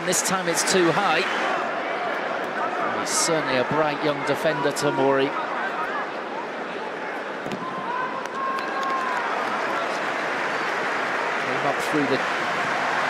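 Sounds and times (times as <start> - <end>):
stadium crowd din: 0.0 - 13.0.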